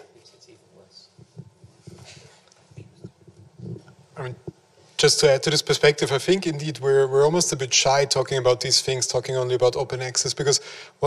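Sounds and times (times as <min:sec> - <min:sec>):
microphone handling noise: 0:01.1 - 0:04.7.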